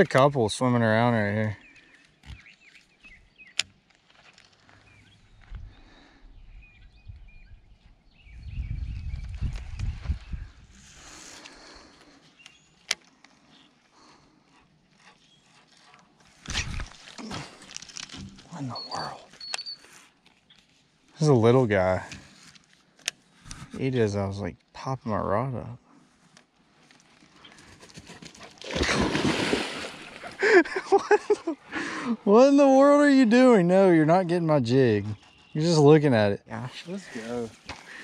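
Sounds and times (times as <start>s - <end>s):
wind rumble on microphone: 5.3s - 10.8s
faint bird chirps: 18.5s - 20.8s, 35.0s - 35.8s.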